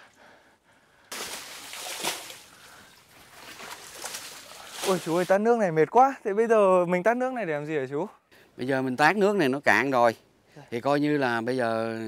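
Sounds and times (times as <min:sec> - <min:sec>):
water sloshing and splashing: 0:01.1 - 0:05.3.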